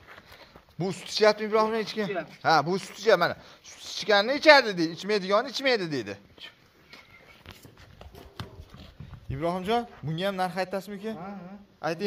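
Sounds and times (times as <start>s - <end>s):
calf hooves on concrete: 0.0s - 3.1s, 6.4s - 10.6s.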